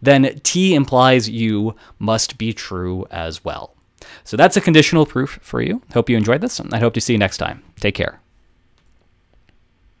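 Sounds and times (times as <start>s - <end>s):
man speaking: 0.0s - 8.3s.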